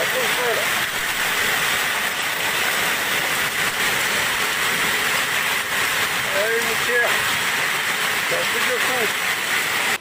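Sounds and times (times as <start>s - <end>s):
rain and hail on stone and roofs: 0.0s - 10.0s.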